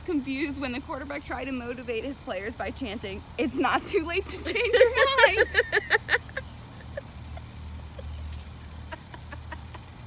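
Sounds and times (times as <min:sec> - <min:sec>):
women laughing stifled: 0:04.5 - 0:10.0.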